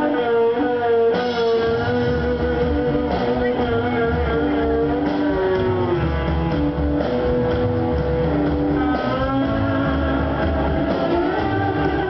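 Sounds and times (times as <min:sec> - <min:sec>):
blues-rock band playing: 0:00.0 - 0:12.0
steady bass: 0:00.0 - 0:12.0
sustained electric guitar notes: 0:00.0 - 0:12.0.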